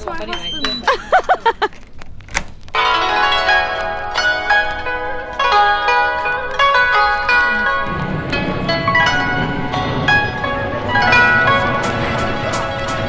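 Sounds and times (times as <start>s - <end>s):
plucked-string background music: 2.7s - 13.0s.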